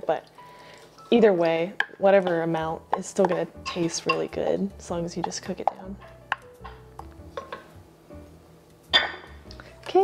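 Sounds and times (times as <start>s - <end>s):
soft background music: 0.0s - 10.0s
ceramic bowl tapping steel pot: 1.8s - 4.4s, 5.2s - 7.7s.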